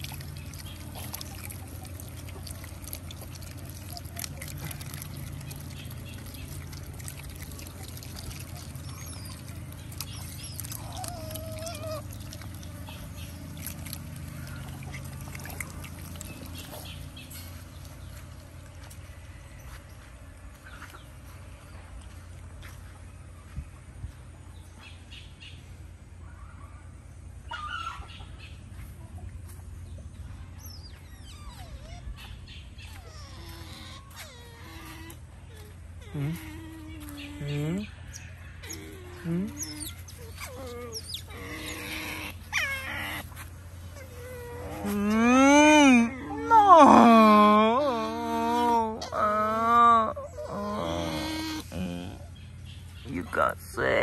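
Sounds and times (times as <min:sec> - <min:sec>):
otters squealing and chirping: 0:00.0 - 0:18.1, 0:30.6 - 0:54.0
low steady rumble: 0:00.0 - 0:54.0
otters chirping: 0:30.6 - 0:46.7
otter squealing: 0:44.1 - 0:52.3.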